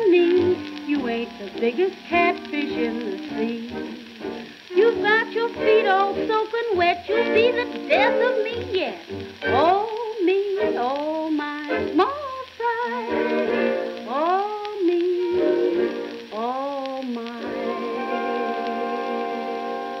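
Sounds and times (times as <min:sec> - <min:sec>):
record surface hiss: 0:00.0 - 0:20.0
swing band playing: 0:00.0 - 0:20.0.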